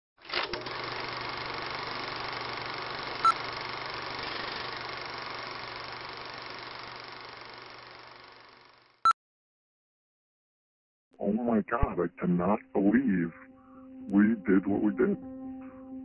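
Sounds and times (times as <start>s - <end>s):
film projector whirring: 0.2s - 9.0s.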